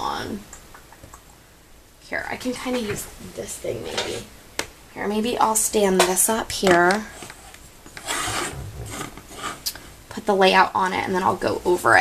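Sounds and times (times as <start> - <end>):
easel feet scraping on mat: 8.0 - 9.7.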